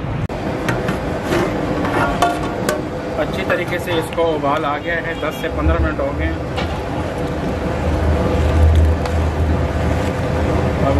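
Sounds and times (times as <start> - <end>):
stove burner rumble: 0.3 - 10.9.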